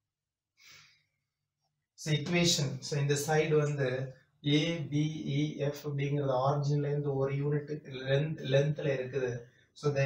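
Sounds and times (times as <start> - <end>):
exhaled breath: 0.6 - 1.2.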